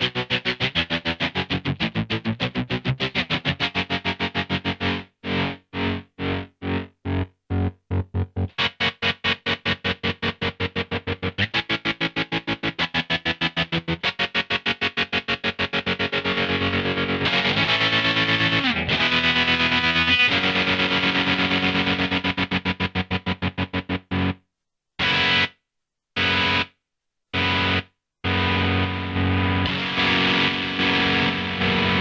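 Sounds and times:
electric guitar with tremolo: 0:00.0 - 0:24.4, 0:25.0 - 0:25.5, 0:26.2 - 0:26.7, 0:27.4 - 0:32.0.

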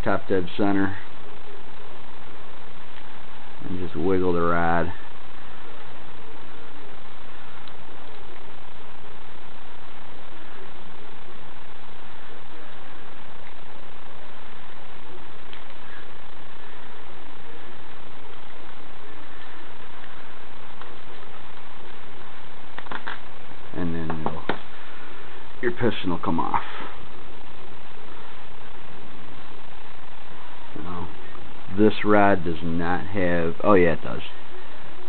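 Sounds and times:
recording hiss: 0:00.0 - 0:35.0
person speaking: 0:23.7 - 0:24.9, 0:25.6 - 0:27.1, 0:30.7 - 0:34.4.

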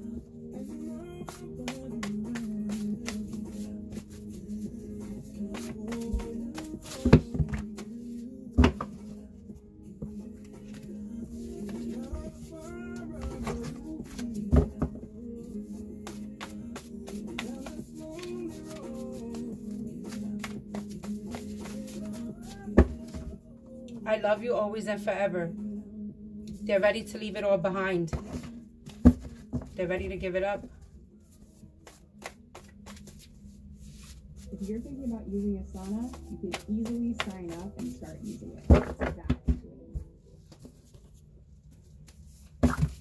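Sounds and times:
soft background music: 0:00.0 - 0:43.0
cards being shuffled: 0:01.3 - 0:03.6, 0:05.5 - 0:08.2.

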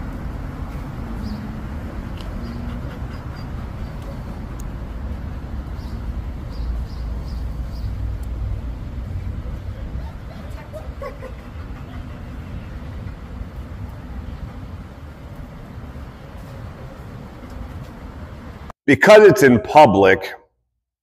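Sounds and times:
road traffic rumble: 0:00.0 - 0:18.7.

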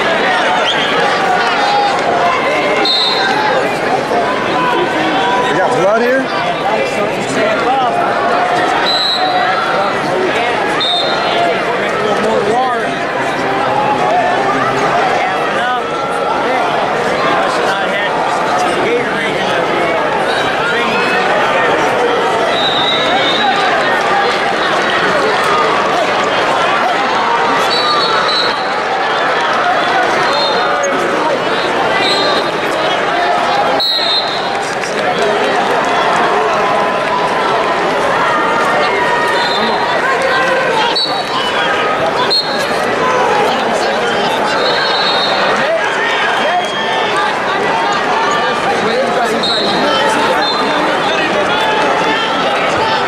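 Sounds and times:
crowd babble: 0:00.0 - 0:53.0
referee whistle blasts: 0:02.8 - 0:03.4, 0:08.8 - 0:09.5, 0:10.8 - 0:11.3, 0:22.5 - 0:23.6, 0:27.6 - 0:28.7, 0:33.8 - 0:34.5, 0:40.9 - 0:41.5, 0:42.2 - 0:42.7, 0:44.6 - 0:45.5, 0:49.4 - 0:50.8.

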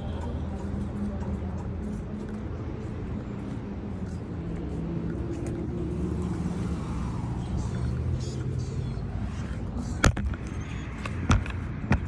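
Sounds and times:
motor vehicle rumble: 0:00.0 - 0:12.0.

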